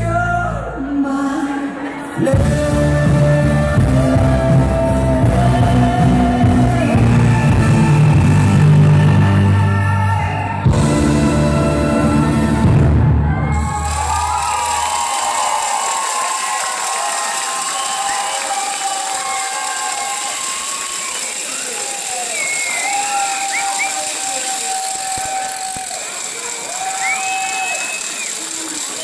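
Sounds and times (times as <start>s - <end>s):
crowd cheering and applauding: 3.0s - 29.0s.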